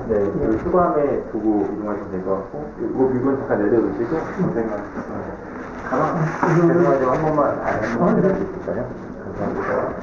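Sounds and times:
person speaking: 0.0 - 9.0
clothing rubbing on microphone: 4.0 - 8.8.

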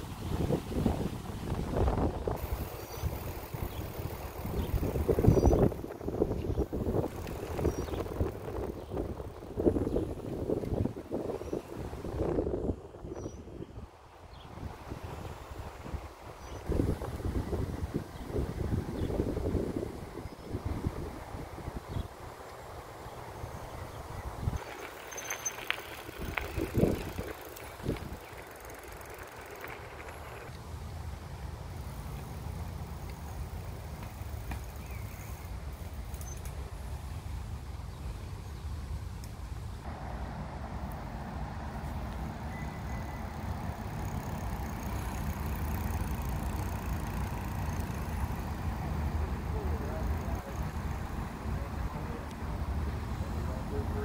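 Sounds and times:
faint high hiss: 0.0 - 10.0.

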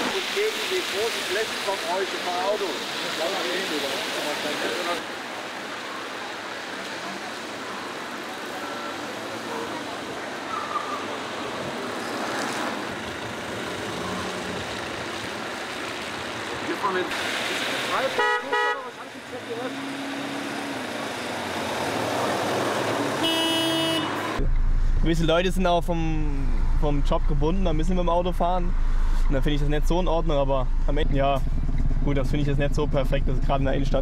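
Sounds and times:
tyres hissing on wet road: 0.0 - 24.4
car horn: 18.1 - 19.0, 23.1 - 24.4.

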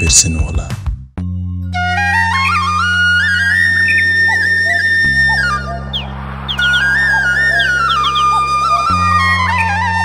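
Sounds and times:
flute melody: 1.7 - 10.0
low drone: 2.3 - 10.0.

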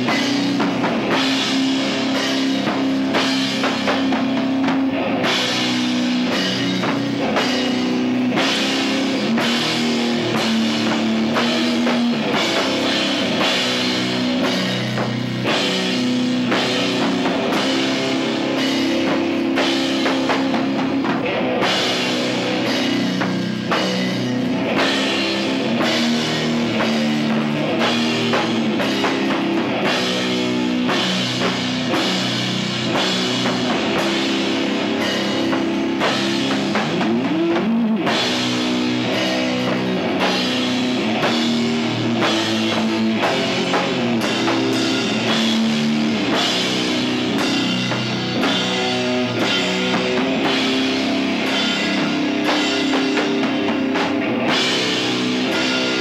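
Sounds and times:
distorted guitar and bass chords: 0.0 - 56.0
drum kit hits: 0.0 - 56.0.

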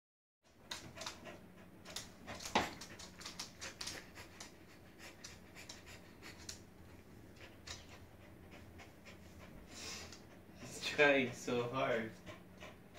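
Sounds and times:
dogs panting: 0.4 - 12.9.

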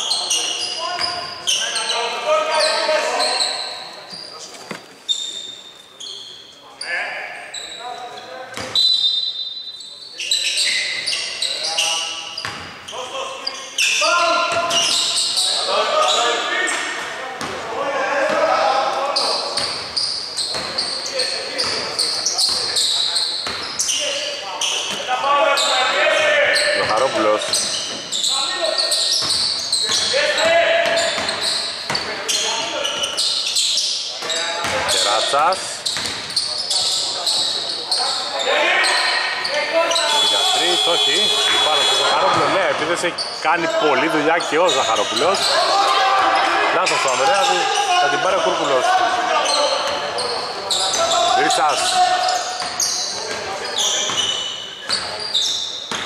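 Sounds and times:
voices talking and calling out: 0.0 - 56.0
basketball bouncing on hardwood: 36.0 - 36.3.

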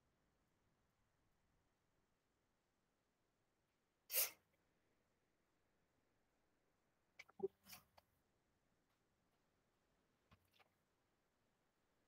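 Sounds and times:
person sneezing: 4.1 - 4.4.

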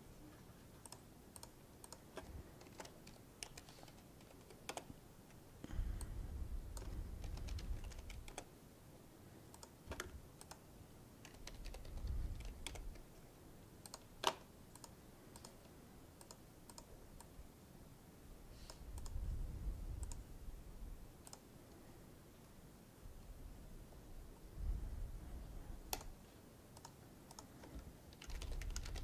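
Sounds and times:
computer keyboard typing: 0.8 - 5.0, 6.7 - 8.5, 9.5 - 10.6, 11.2 - 13.2, 13.8 - 17.3, 21.2 - 21.4, 26.8 - 29.0.

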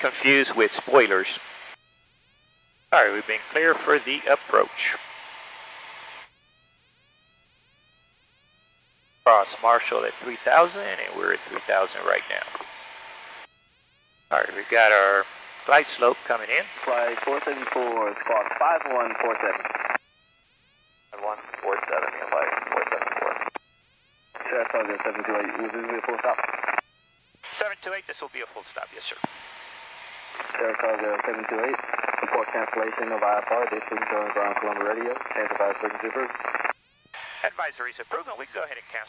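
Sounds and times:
speech over headset intercom: 0.0 - 1.4, 3.0 - 5.0, 9.3 - 12.5, 14.3 - 19.7, 21.2 - 23.4, 24.4 - 26.4, 27.5 - 29.2, 30.4 - 36.4, 37.2 - 39.0
faint radio hiss: 0.0 - 1.8, 2.9 - 6.2, 9.2 - 13.5, 14.3 - 20.0, 21.1 - 23.6, 24.4 - 26.8, 27.4 - 39.0.

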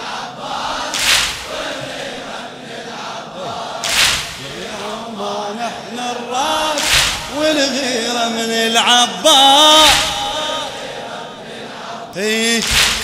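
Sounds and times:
male chorus chanting: 0.0 - 13.0
sharp percussive hits: 0.9 - 1.9, 3.8 - 4.6, 6.8 - 7.4, 9.8 - 10.4, 12.6 - 13.0
man singing solo: 4.8 - 10.7.

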